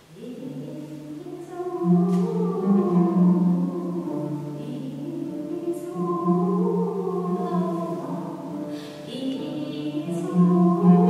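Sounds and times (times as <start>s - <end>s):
oud: 0.4s - 11.0s.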